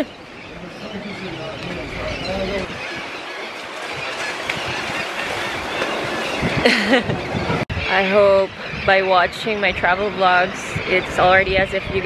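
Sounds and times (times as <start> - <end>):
faint voices: 0.0 - 4.0
surf washing onto beach: 2.8 - 7.6.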